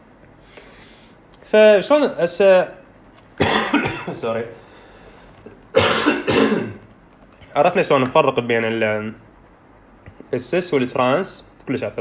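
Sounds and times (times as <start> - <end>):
man coughing: 3.4 - 4.4, 5.7 - 6.8.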